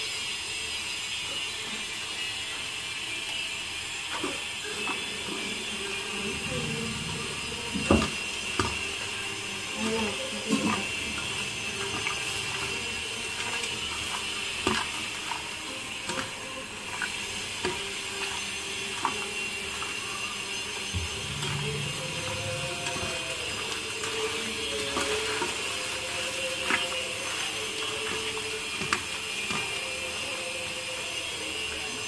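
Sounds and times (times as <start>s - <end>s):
wet squishing of meat: 10.4s - 20.0s.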